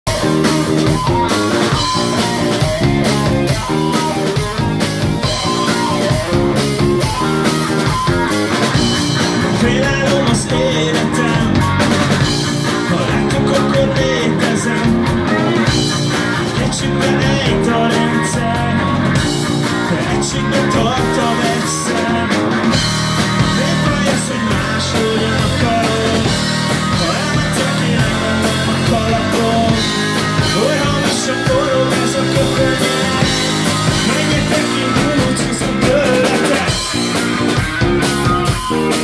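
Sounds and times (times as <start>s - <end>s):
choppy electric guitar chords: 0.0s - 39.0s
rock band playing live: 0.0s - 39.0s.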